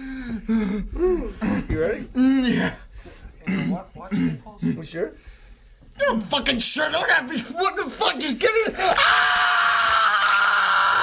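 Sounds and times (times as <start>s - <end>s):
man screaming in pain: 8.8s - 11.0s.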